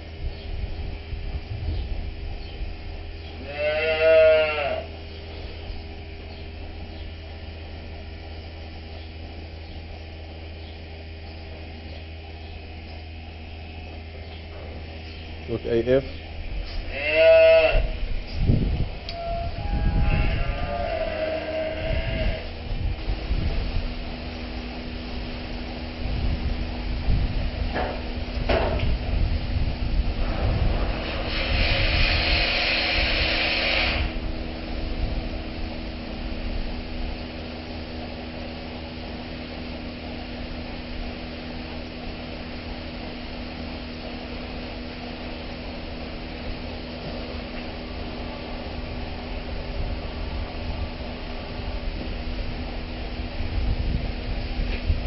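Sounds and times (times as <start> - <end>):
machinery hum: 0.0 - 55.0.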